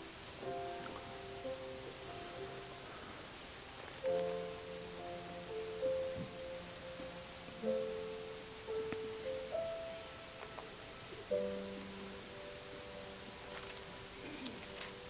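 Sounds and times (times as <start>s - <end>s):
slow piano chords: 0.0s - 15.0s.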